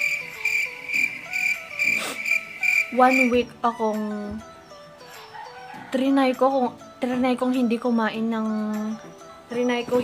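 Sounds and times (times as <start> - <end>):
cricket chirping: 0.0 - 3.3.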